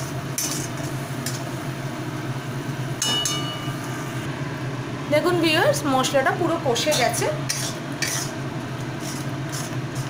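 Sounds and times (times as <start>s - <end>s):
spatula scraping a pan: 6.9s - 8.4s, 9.0s - 10.0s.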